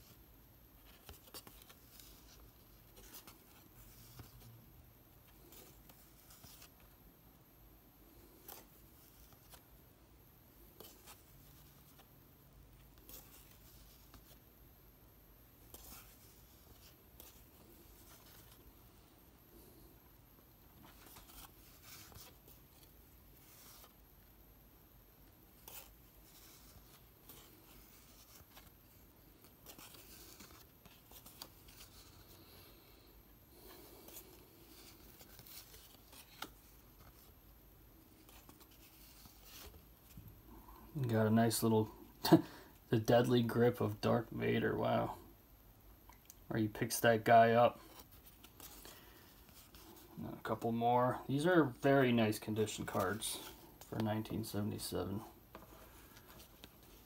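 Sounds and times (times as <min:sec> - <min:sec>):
cardboard cards rustling and clicking: 0:00.8 - 0:04.5, 0:25.5 - 0:32.6, 0:33.5 - 0:37.4, 0:55.5 - 0:57.0.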